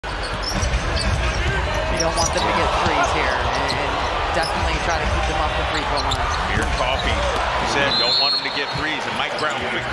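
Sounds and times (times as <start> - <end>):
arena crowd noise: 0.0 - 9.9.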